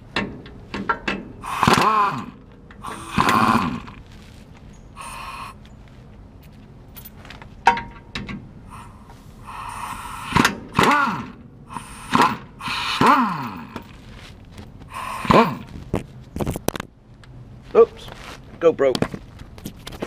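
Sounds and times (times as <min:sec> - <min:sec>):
air impact wrench whining: 0:01.3 - 0:04.0, 0:05.0 - 0:05.6, 0:08.6 - 0:14.1, 0:14.9 - 0:15.8.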